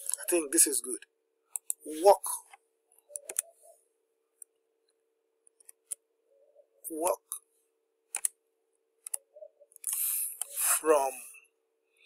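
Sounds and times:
keyboard keystrokes: 0:03.1 - 0:03.5, 0:08.1 - 0:08.3.

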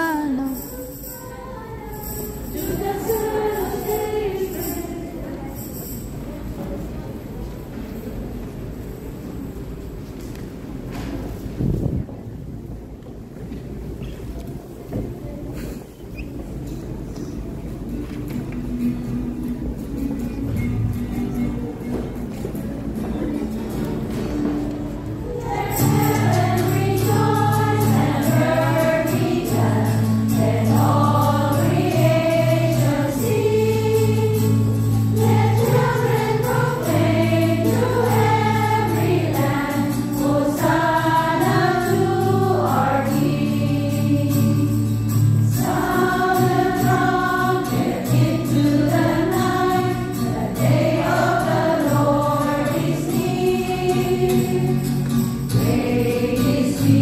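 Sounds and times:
choir singing a hymn: 0:00.0 - 0:06.0, 0:25.0 - 0:57.0.

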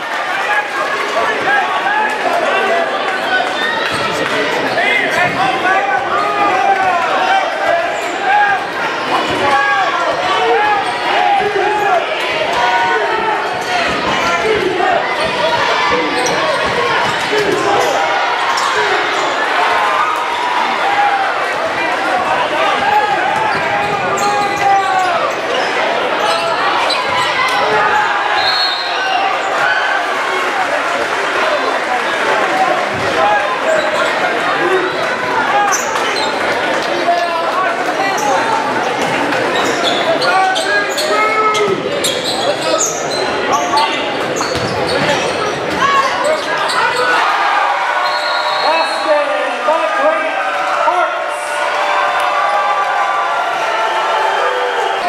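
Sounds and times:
crowd chatter: 0:00.0 - 0:55.0.

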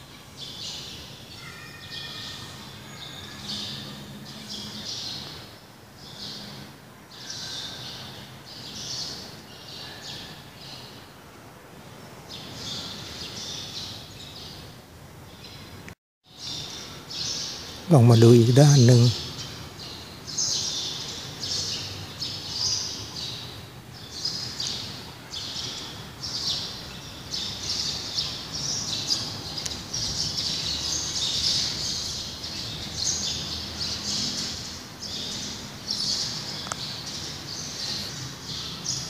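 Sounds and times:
small birds chirping: 0:00.0 - 0:11.1, 0:12.2 - 0:39.0.

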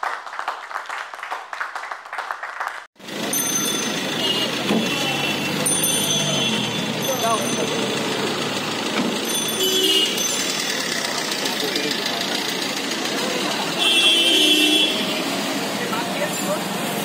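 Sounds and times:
busy street traffic: 0:03.0 - 0:17.0
people talking: 0:04.3 - 0:08.3, 0:10.6 - 0:16.8.

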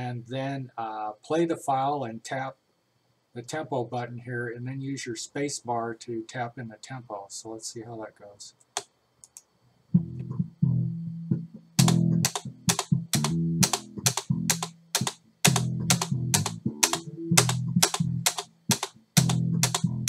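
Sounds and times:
bass riff playing: 0:09.9 - 0:20.0
space bar tapping: 0:11.8 - 0:20.0.

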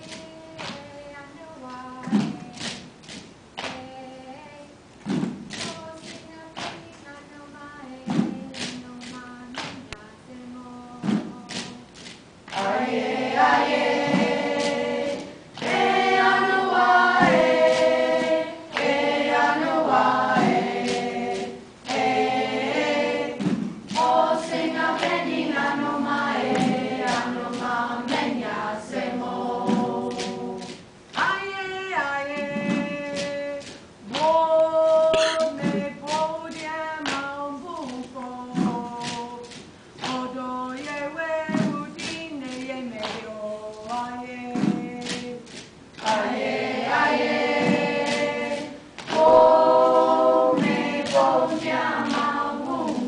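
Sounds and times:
group of voices singing: 0:03.6 - 0:53.0
gourd shakers rattling: 0:11.0 - 0:12.6, 0:32.6 - 0:46.2
light percussive strikes: 0:11.0 - 0:53.0
deep thump: 0:23.3 - 0:24.0.

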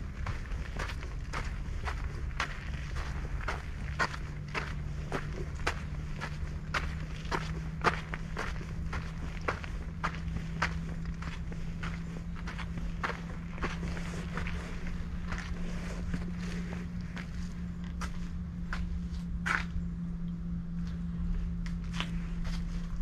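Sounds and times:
footsteps on dirt path: 0:00.0 - 0:23.0
steady low hum: 0:00.0 - 0:23.0.

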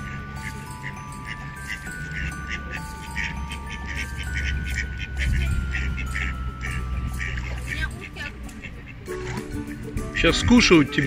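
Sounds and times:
background music: 0:00.0 - 0:11.0
ducks quacking: 0:00.0 - 0:11.0.

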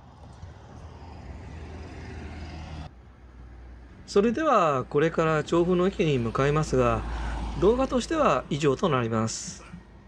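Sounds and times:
passing vehicle engine and tyres: 0:00.0 - 0:10.0.

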